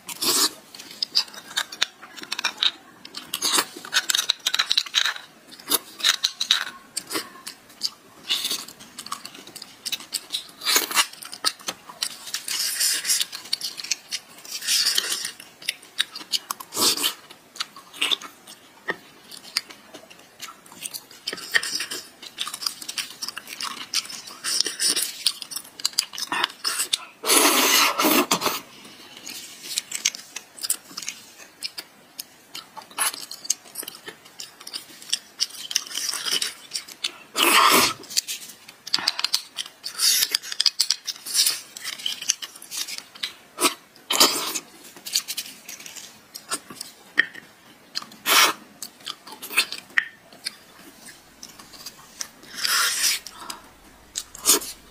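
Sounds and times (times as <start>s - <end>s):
person chewing: 0.0s - 54.9s.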